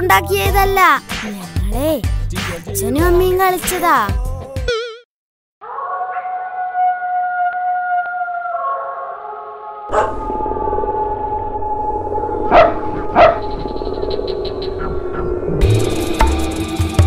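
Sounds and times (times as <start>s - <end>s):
music: 0.0s - 4.8s, 15.6s - 17.0s
dog howling: 5.6s - 14.1s
dog barking: 9.9s - 10.2s, 12.5s - 13.4s.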